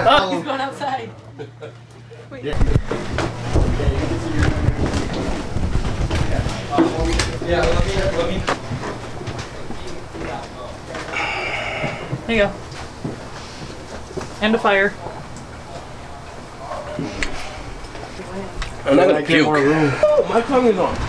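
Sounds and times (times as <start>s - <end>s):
footsteps: 2.6s - 18.8s
background voices: 9.4s - 12.6s.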